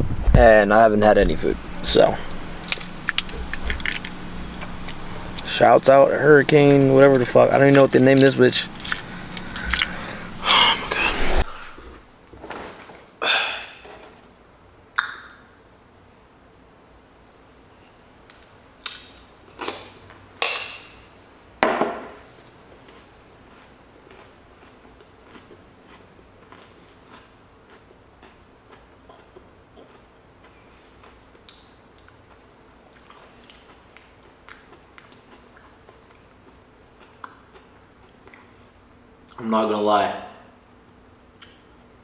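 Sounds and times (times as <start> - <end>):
low hum inside a car: 0.0 - 12.0.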